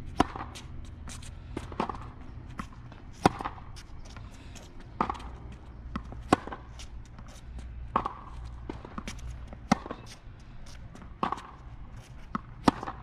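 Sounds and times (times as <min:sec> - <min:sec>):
racket hitting tennis ball: 0:00.0 - 0:13.0
tennis ball bouncing: 0:00.0 - 0:13.0
shoe scuffs on court: 0:00.2 - 0:12.9.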